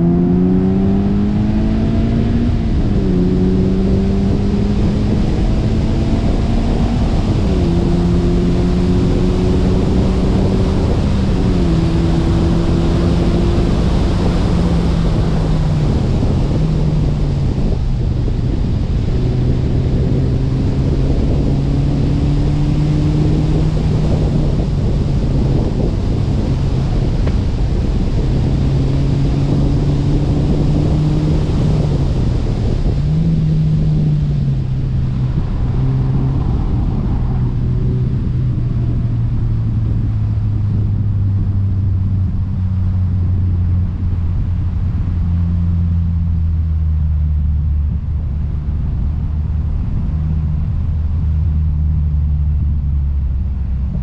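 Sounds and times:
car engine running: 0:00.0 - 0:54.0
wind and road noise: 0:00.0 - 0:54.0.

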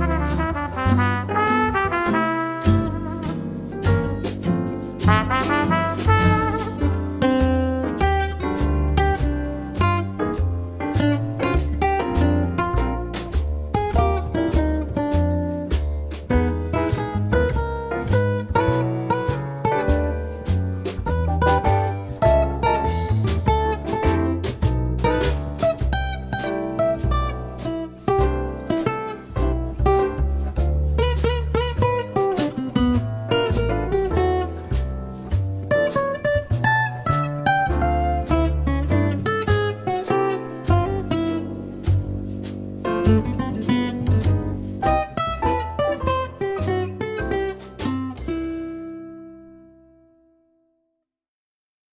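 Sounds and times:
instrumental background music: 0:00.0 - 0:50.6.

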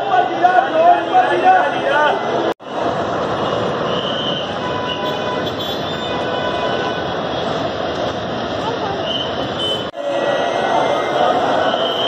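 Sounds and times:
people talking: 0:08.6 - 0:09.2, 0:10.0 - 0:12.0.

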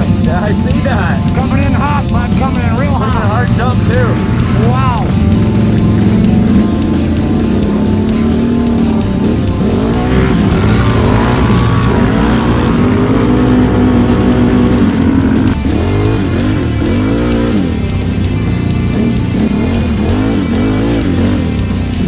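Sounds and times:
atv engines revving: 0:00.0 - 0:22.0
guitar-driven background music: 0:00.0 - 0:22.0.

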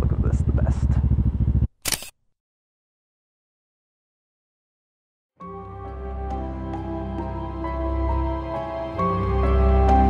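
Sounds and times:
motorcycle engine running: 0:00.0 - 0:01.7
camera shutter click: 0:01.8 - 0:02.2.

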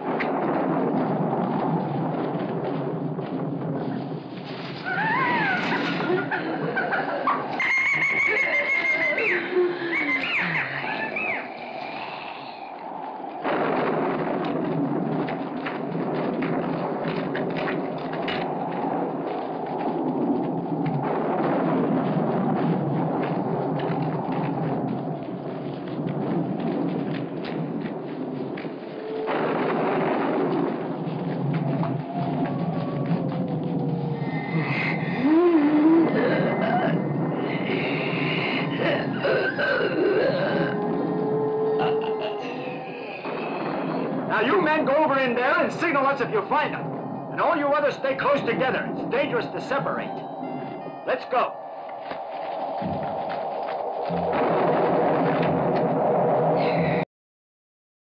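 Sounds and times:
dense film soundtrack: 0:00.0 - 0:57.0
high animal howls and yelps: 0:04.8 - 0:13.4, 0:31.5 - 0:44.2.

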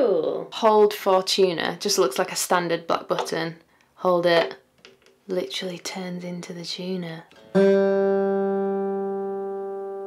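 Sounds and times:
acoustic guitar string ringing: 0:07.4 - 0:10.0.

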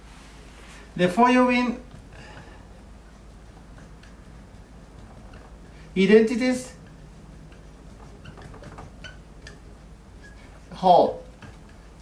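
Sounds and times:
marker squeaking on whiteboard: 0:01.8 - 0:12.0.

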